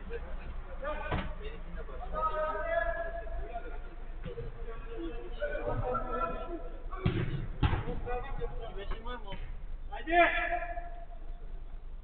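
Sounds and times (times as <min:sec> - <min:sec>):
football kicked thud: 0:07.0 - 0:08.0.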